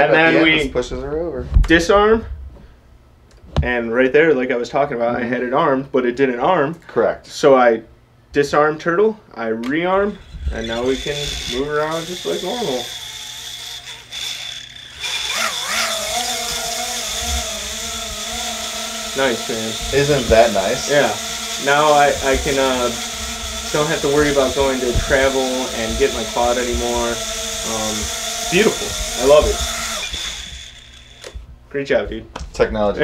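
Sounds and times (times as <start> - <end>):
small drone motors whining: 10.2 - 31.4.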